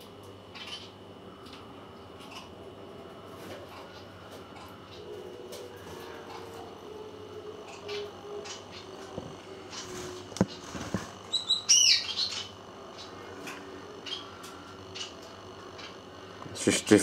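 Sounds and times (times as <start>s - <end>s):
bird chirping: 0.5s - 1.0s, 10.4s - 13.2s, 13.8s - 16.0s.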